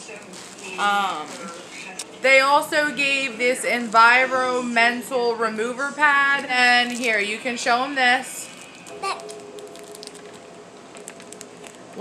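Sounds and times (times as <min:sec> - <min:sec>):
packaging being handled: 0:08.6 - 0:12.0.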